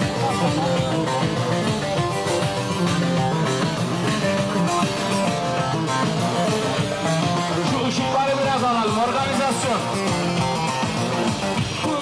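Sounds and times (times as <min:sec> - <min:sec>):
band playing folk dance tune: 0:00.0 - 0:12.0.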